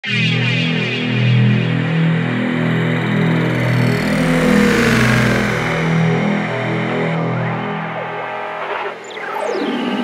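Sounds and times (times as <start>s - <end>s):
low synth chord: 2.1s - 8.5s
rising synth sweep: 2.1s - 8.6s
deep rumble: 2.9s - 8.0s.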